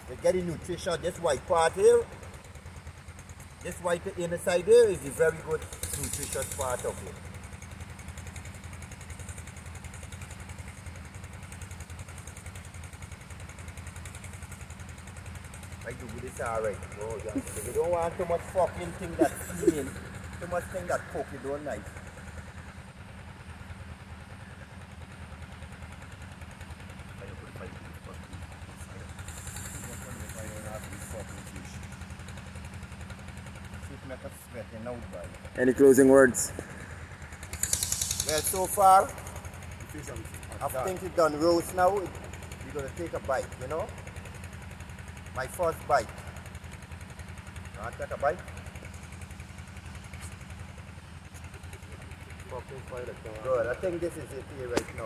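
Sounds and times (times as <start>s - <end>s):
low engine-like drone: 0.0s - 55.0s
short high hiss: 37.6s - 38.6s.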